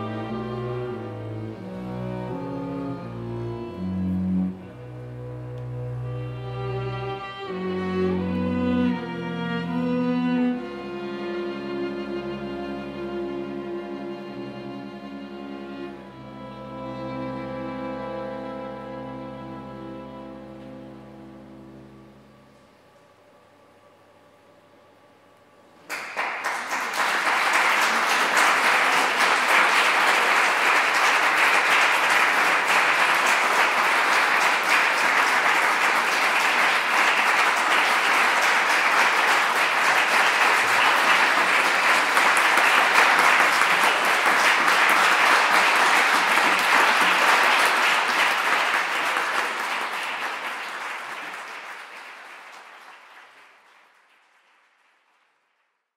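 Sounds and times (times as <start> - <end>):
audience applause: 25.9 - 55.5.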